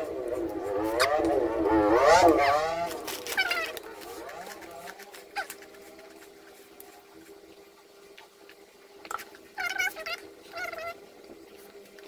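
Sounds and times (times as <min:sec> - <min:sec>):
faint steady hum: 0:00.0 - 0:12.0
small animal high calls: 0:03.3 - 0:03.8, 0:09.6 - 0:11.0.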